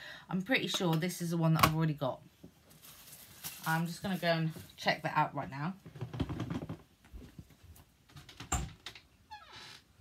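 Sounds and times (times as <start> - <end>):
clothing rustle: 2.4 - 4.9
wardrobe door creaking open: 8.1 - 10.0.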